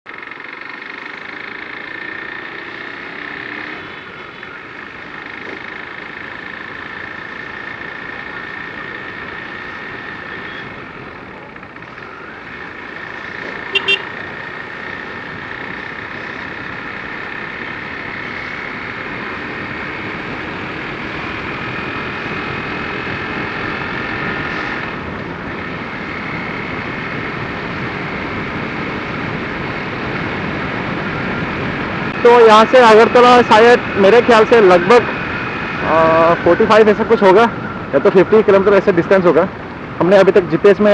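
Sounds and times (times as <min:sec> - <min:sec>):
motorcycle engine running: 0:00.1 - 0:40.9
horn beeping: 0:13.6 - 0:14.2.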